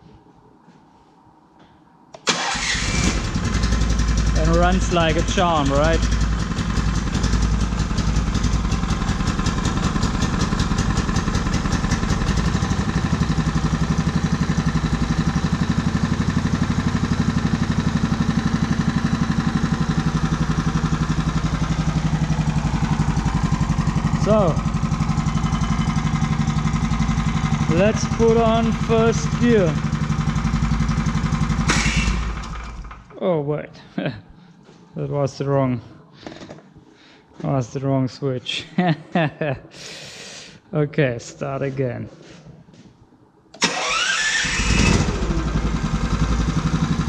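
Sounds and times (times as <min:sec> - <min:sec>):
small petrol engine idling: 0:02.3 - 0:33.1, 0:43.6 - 0:47.0.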